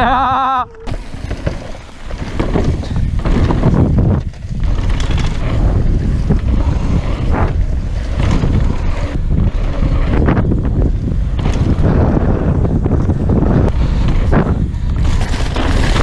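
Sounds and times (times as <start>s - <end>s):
bike tyres rolling on dirt: 0.0s - 16.0s
tyres scraping through turns: 0.0s - 16.0s
wind buffeting microphone: 0.0s - 16.0s.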